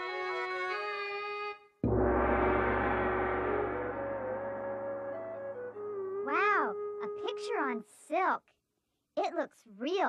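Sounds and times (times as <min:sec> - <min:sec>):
held music note: 0:01.8 - 0:07.1.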